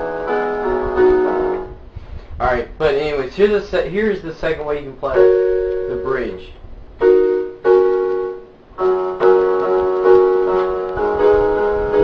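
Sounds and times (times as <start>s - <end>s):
electronic keyboard piano chords: 0.0s - 2.0s, 5.0s - 12.0s.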